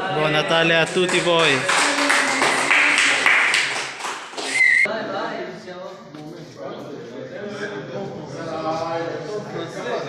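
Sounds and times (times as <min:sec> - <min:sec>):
hand clapping: 0:00.8 - 0:04.9
short high whistle: 0:04.4 - 0:04.9.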